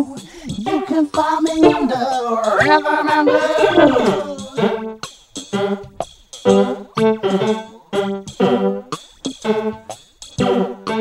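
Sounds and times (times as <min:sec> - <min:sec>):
choppy instrumental chords: 0:00.0 - 0:11.0.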